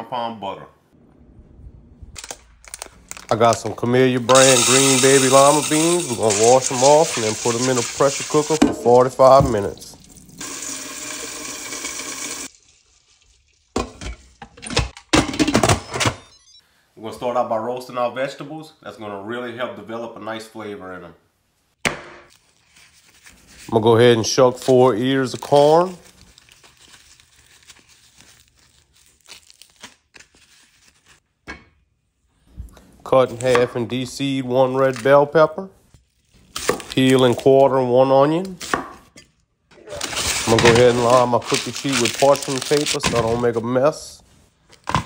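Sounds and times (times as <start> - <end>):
corn husks ripping: 2.2 - 8.6, 25.3 - 31.2, 39.8 - 43.4
corn husks rustling: 2.2 - 10.0, 39.9 - 44.0
tap water running into bowl: 9.4 - 14.0.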